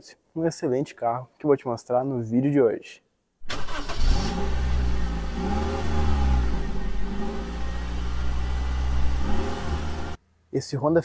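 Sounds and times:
car engine starting and revving: 3.4s - 10.2s.

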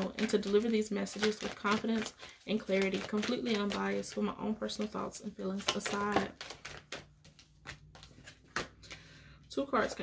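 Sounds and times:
cards shuffled by hand: 0.0s - 9.1s.

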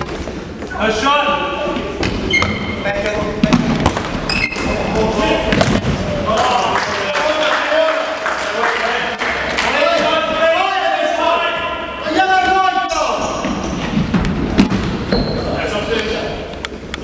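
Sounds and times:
ball bouncing on wooden floor: 3.4s - 4.8s, 5.5s - 6.0s
players shouting in echoing hall: 4.2s - 14.1s.

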